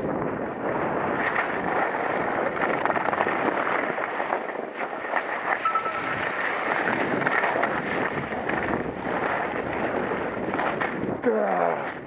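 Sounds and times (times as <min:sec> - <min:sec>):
wind on microphone: 0:00.0 - 0:04.8, 0:05.7 - 0:12.0
skis scraping over snow: 0:00.1 - 0:05.6, 0:06.3 - 0:12.0.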